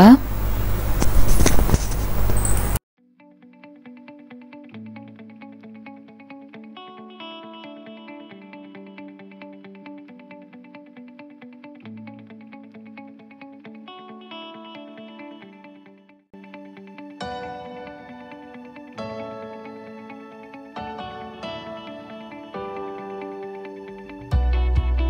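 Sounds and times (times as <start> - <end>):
plucked guitar-like melody: 3.0 - 25.0.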